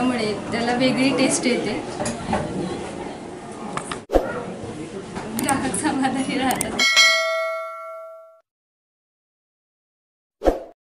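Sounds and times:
bell chime notification: 6.8 - 8.4.

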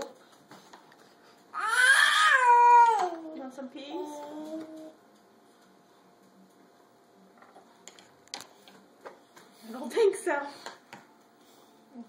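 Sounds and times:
toddler whining wail: 1.5 - 3.3.

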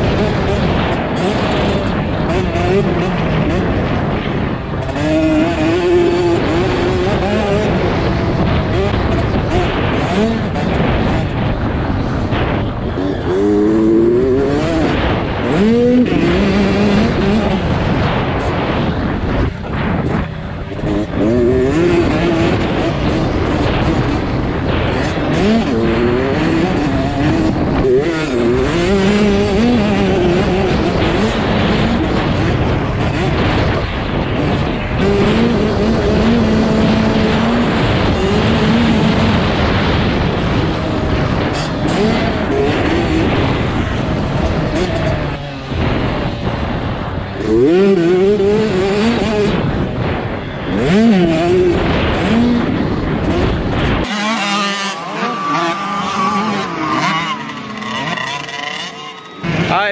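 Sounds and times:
motocross bike engine revving: 0.0 - 59.9
wind rushing over microphone: 0.0 - 59.9.

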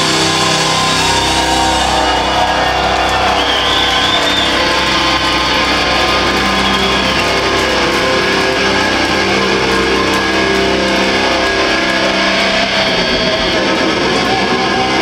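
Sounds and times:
bass: 0.0 - 15.0
distorted electric guitars: 0.0 - 15.0
drums: 0.0 - 15.0.

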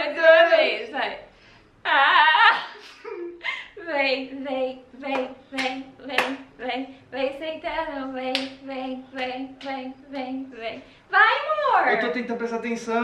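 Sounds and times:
sharp hand claps: 5.1 - 6.5, 8.3 - 8.6.

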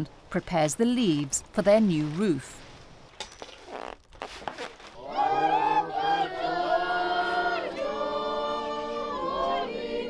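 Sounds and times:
choir singing unaccompanied: 5.0 - 10.0.

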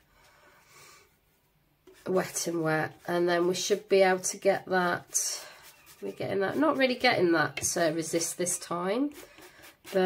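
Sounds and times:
brush on plastic palette: 1.0 - 10.0.

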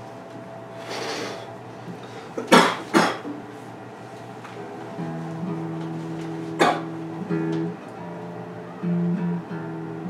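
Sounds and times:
person coughing: 2.4 - 3.3, 6.6 - 6.9.

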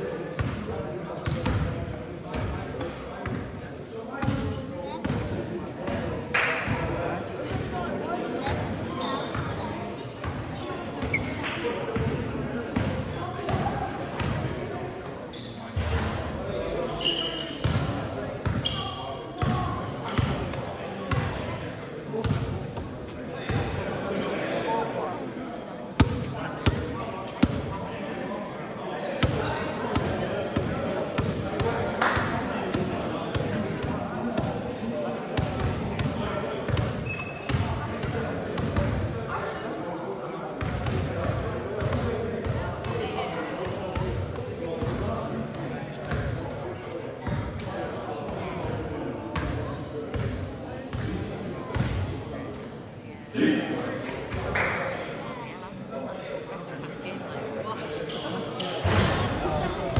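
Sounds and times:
basketballs bouncing on wooden court: 51.7 - 52.0.

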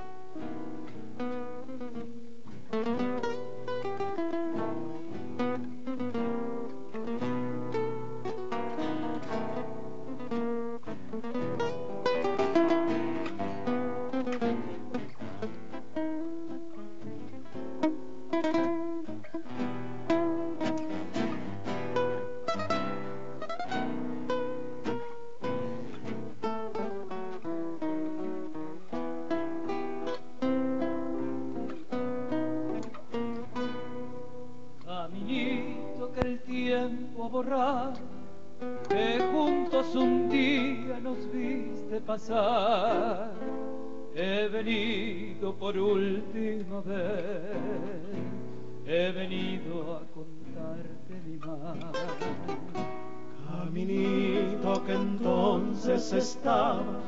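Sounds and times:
acoustic guitars playing tango: 0.0 - 57.0.

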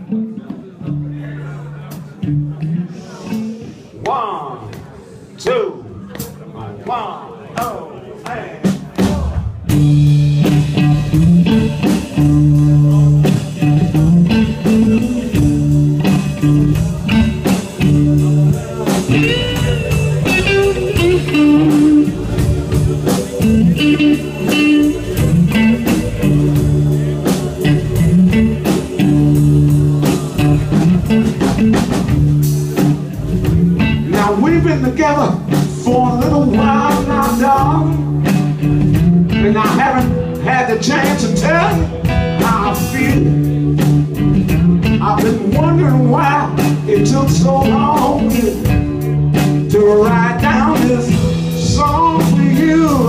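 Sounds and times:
bass: 0.0 - 53.0
steady drum beat: 5.5 - 53.0
keyboard chords: 9.1 - 53.0
electric guitar lead lines: 9.6 - 53.0.

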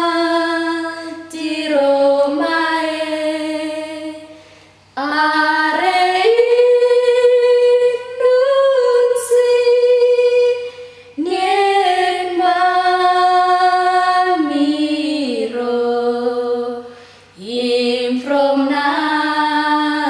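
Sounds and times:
woman singing unaccompanied: 0.0 - 4.3, 5.0 - 20.0.

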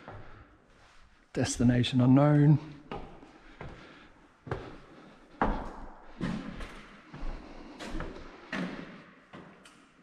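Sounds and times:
footsteps on wooden floor: 2.8 - 9.6.

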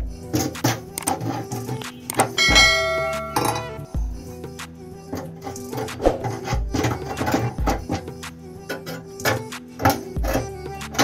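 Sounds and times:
music with steady beat: 0.0 - 11.0
ringing bell chime: 2.4 - 3.8.

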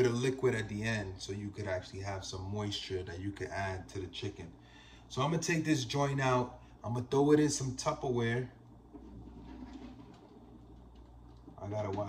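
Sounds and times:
faint steady low hum: 0.0 - 12.0
tray sliding out of oven: 9.0 - 10.5.

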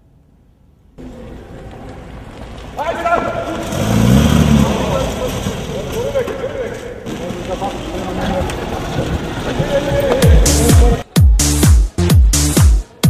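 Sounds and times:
people talking: 2.8 - 11.1
car engine revving: 3.5 - 9.6.

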